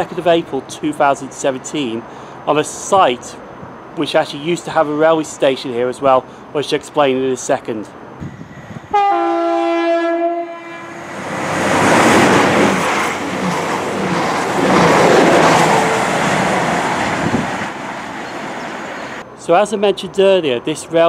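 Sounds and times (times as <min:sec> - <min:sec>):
train horn: 0:08.9 - 0:11.1
train rushing through platform: 0:10.5 - 0:19.2.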